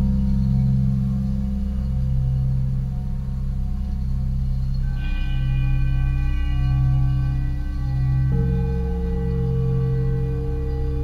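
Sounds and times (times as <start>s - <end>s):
metal singing bowls humming: 0.0s - 11.0s.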